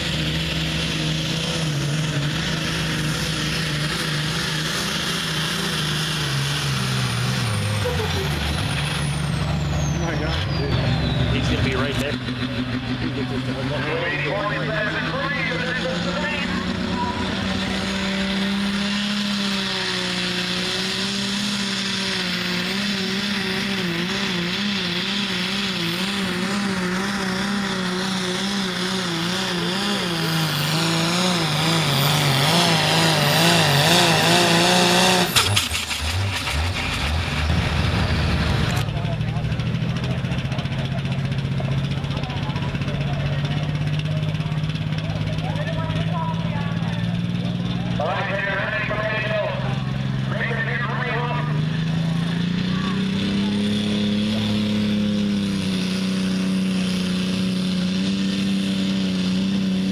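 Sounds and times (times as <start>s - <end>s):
tractor engine at full throttle: 0.0s - 59.9s.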